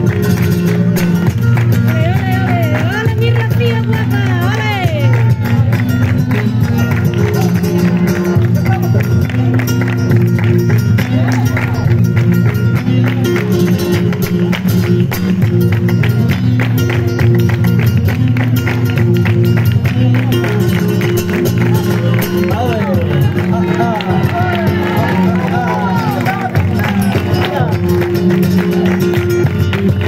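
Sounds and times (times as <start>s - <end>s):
flamenco music over loudspeaker: 0.0s - 30.0s
hand-clapping: 0.0s - 30.0s
person singing: 1.8s - 5.8s, 19.9s - 28.0s.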